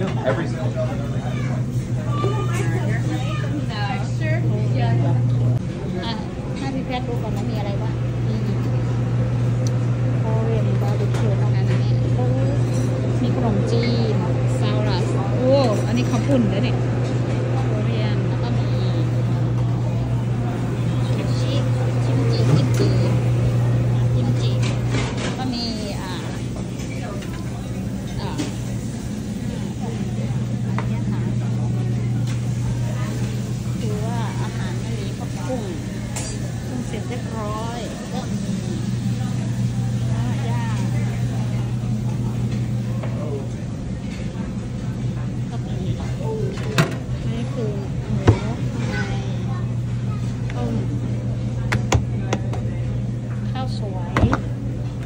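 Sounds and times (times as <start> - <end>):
murmur of voices: 0.0 - 55.0
steady low hum: 0.0 - 55.0.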